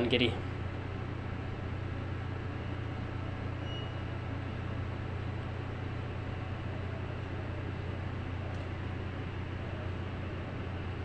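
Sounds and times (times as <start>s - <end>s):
ventilation hiss: 0.0s - 11.0s.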